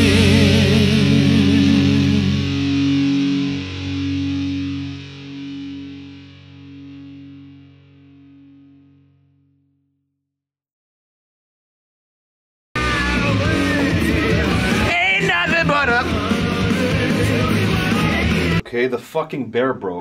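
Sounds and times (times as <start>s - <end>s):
distorted electric guitar chord: 0.0s - 9.6s, 12.8s - 18.6s.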